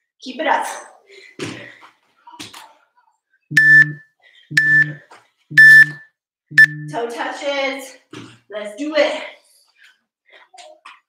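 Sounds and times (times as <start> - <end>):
electronic timer beeping: 3.5 - 7.0.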